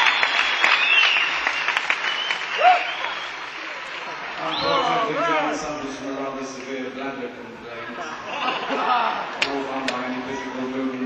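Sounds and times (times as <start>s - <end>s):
whistles and shouts: 0.0s - 3.8s, 4.4s - 5.0s
audience applauding: 0.0s - 5.6s, 8.5s - 11.0s.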